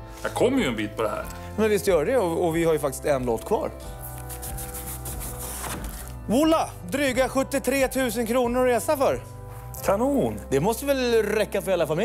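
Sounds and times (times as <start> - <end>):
background music: 0.0 - 12.0
paper brochure being opened: 4.1 - 6.2.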